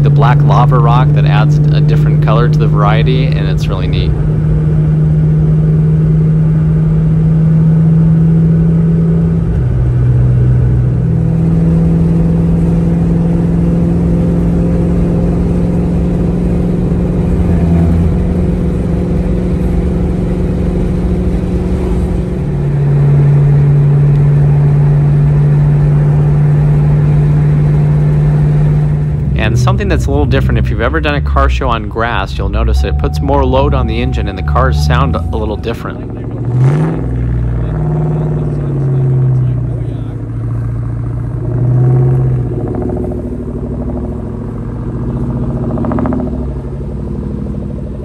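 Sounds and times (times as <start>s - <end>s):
car engine drone at cruise: 0.0s - 48.0s.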